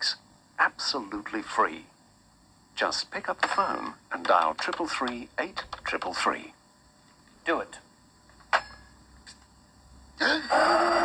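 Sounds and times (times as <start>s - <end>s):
man grunting: 10.2s - 11.0s.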